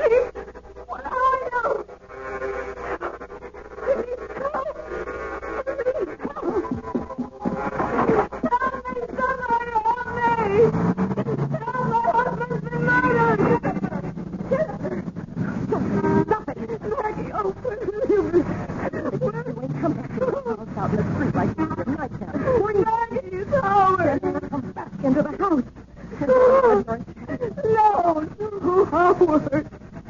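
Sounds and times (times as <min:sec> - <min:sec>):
voices: 0:00.0 - 0:30.0.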